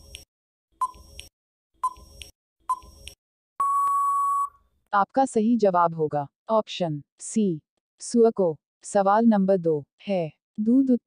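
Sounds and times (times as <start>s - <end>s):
timer tick: 0.0s - 3.2s
steady electronic beep: 3.6s - 4.6s.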